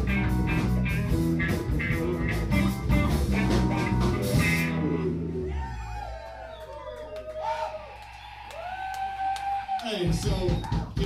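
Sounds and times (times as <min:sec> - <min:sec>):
rock band playing: 0:00.0 - 0:07.3
crowd whooping: 0:04.3 - 0:11.0
crowd cheering: 0:05.0 - 0:11.0.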